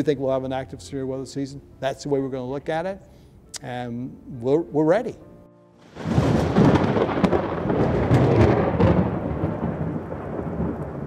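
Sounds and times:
rain: 0:05.9 - 0:11.0
sharp thunder cracks: 0:05.9 - 0:11.0
thunder rumbling: 0:05.9 - 0:11.0.

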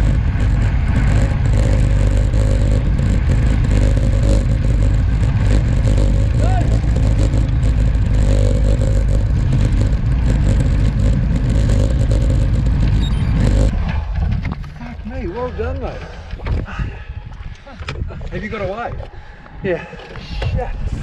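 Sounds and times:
wind buffeting microphone: 0:09.0 - 0:21.0.

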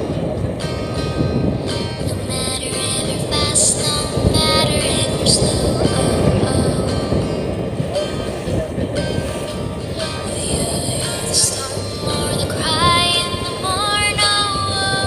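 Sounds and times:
boat rumbling on water: 0:00.0 - 0:15.0.

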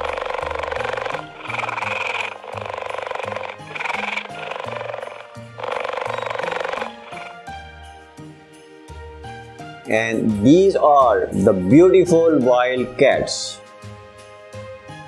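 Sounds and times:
cheetah call: 0:00.0 - 0:07.5
light background music: 0:00.0 - 0:15.0.

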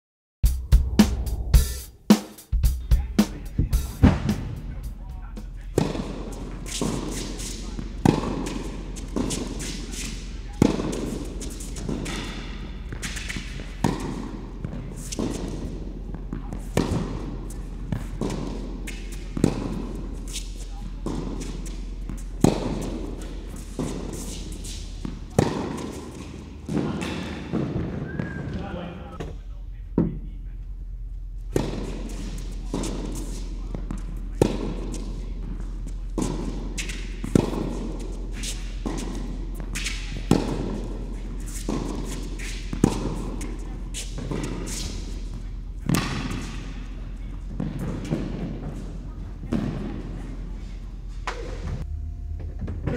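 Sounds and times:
tennis ball bouncing: 0:05.7 - 0:28.3, 0:31.5 - 0:50.0
tennis racquet striking ball: 0:05.7 - 0:28.3, 0:31.5 - 0:48.9.

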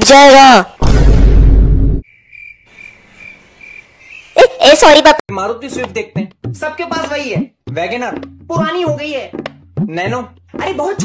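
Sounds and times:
cricket chirping: 0:02.0 - 0:04.9.

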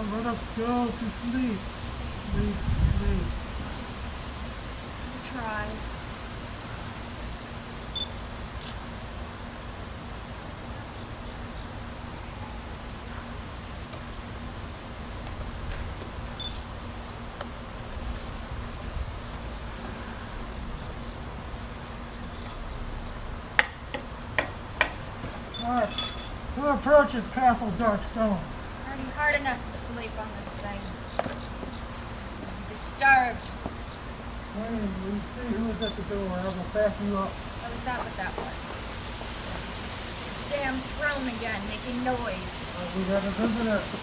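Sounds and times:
background hiss: 0:00.0 - 0:44.0
faint hum: 0:00.0 - 0:44.0
person speaking: 0:39.4 - 0:44.0.

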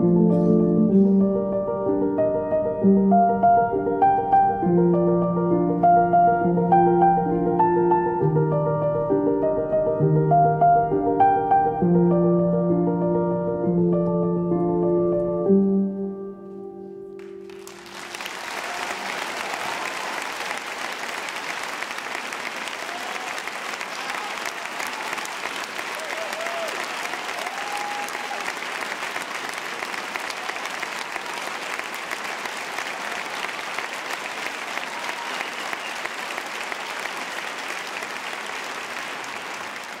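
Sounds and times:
audience applauding: 0:17.2 - 0:40.0.

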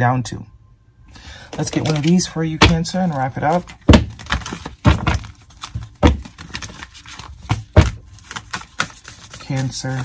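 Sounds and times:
sharp thumps of cards: 0:01.5 - 0:09.0
cards being shuffled: 0:01.5 - 0:10.0.

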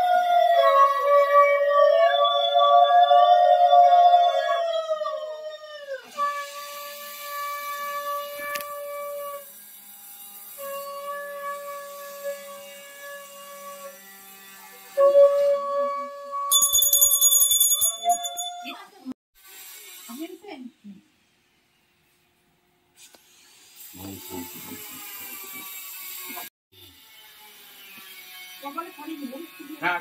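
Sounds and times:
small hand bell ringing: 0:16.5 - 0:19.0.

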